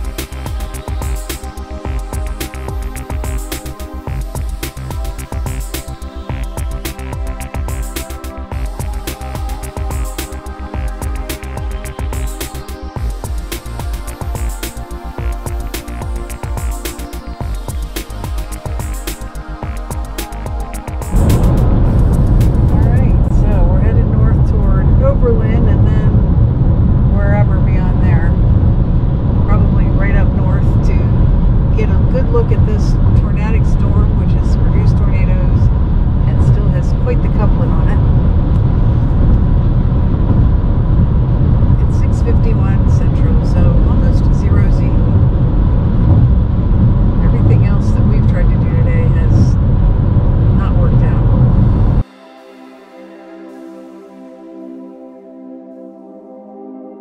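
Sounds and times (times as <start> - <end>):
car road noise rumble: 0.0 - 52.0.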